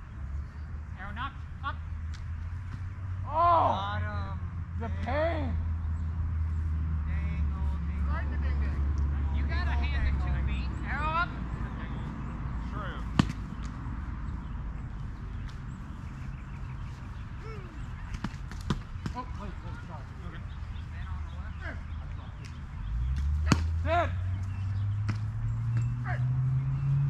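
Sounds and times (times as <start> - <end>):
distant shouting voices: 0.9 - 2.2, 3.0 - 15.3, 16.0 - 27.0.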